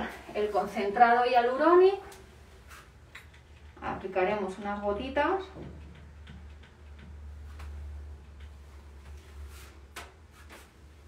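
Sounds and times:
soft clicks and rustles: 5.5s - 11.0s.

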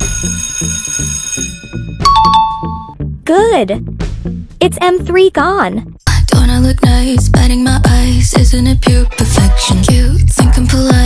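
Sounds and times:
alarm bell ringing: 0.0s - 3.0s
background music beat: 1.7s - 11.0s.

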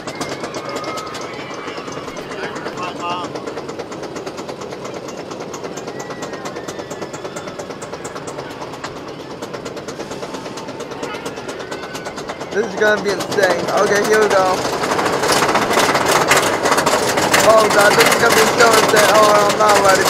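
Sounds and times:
anti-rollback dogs clicking: 0.0s - 20.0s
roller coaster lift chain clatter: 0.0s - 20.0s
faint rider voices: 0.1s - 20.0s.

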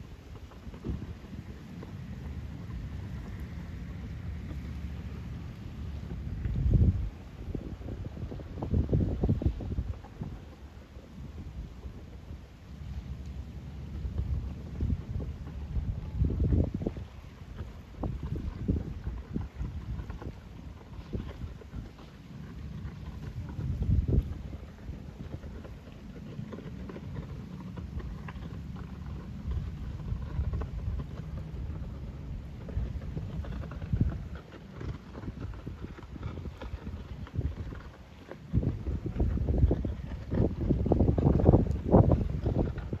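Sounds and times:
wind buffeting microphone: 0.0s - 43.0s.

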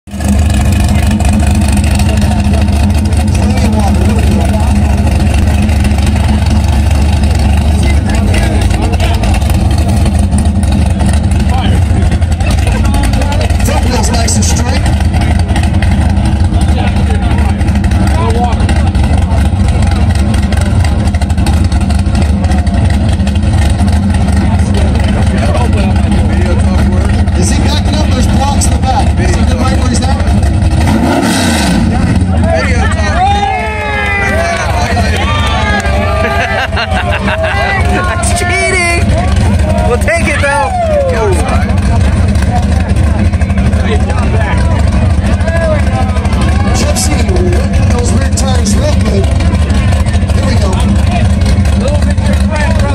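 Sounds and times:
car engine idling: 0.0s - 52.9s.

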